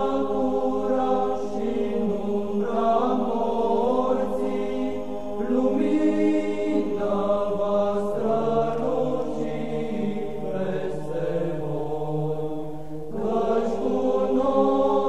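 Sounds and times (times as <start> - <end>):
choir chanting: 0.0 - 15.0.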